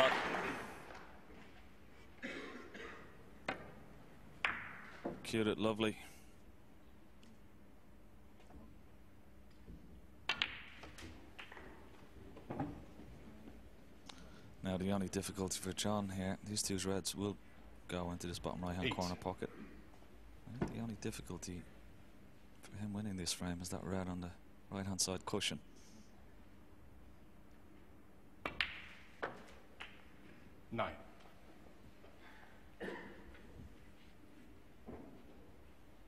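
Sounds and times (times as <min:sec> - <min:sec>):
snooker balls clicking: 0:03.4 - 0:05.2, 0:09.5 - 0:13.0, 0:28.4 - 0:30.4.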